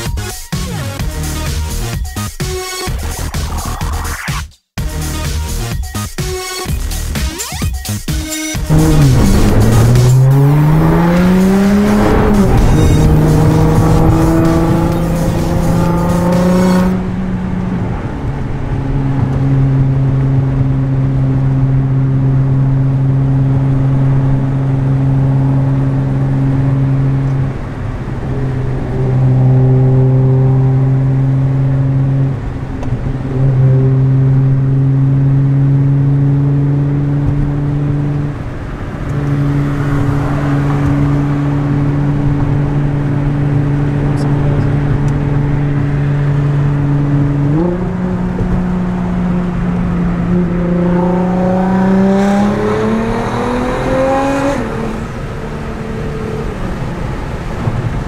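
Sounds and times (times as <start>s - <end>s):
car engine drone from inside cabin: 8.6s - 58.0s.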